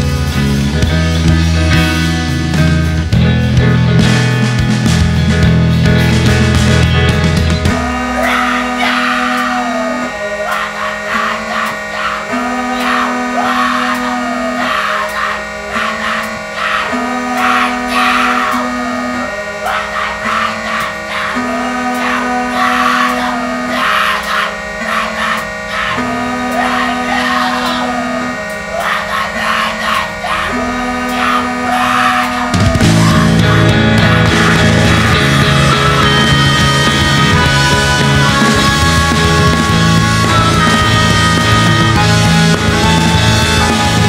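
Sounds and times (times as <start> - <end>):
drums keeping time: 0.0 - 44.0
guitar repeating figure: 0.0 - 44.0
held bass notes: 0.0 - 44.0.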